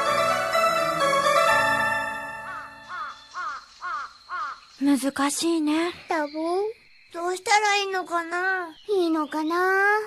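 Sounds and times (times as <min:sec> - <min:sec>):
crows cawing: 0:02.4 - 0:04.8.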